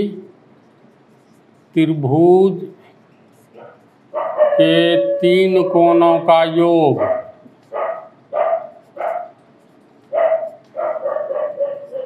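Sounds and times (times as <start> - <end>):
dog barking: 3.6 - 5.2, 6.9 - 9.4, 10.1 - 12.0.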